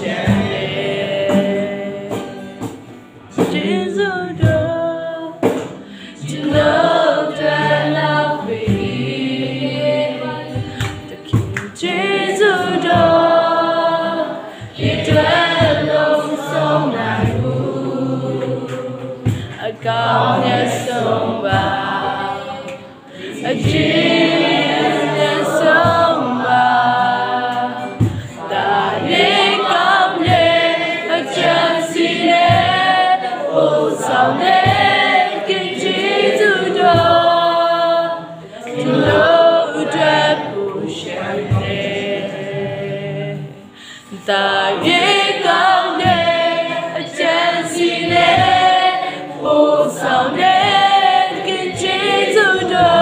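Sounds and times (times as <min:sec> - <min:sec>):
people singing together: 0:00.0 - 0:53.0
strummed acoustic guitars: 0:00.0 - 0:53.0.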